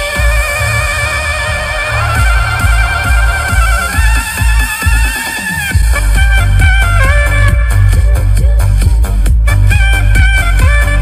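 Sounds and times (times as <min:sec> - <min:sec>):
soprano saxophone melody: 0:00.0 - 0:08.7, 0:09.4 - 0:11.0
heavy bass beat: 0:00.0 - 0:11.0.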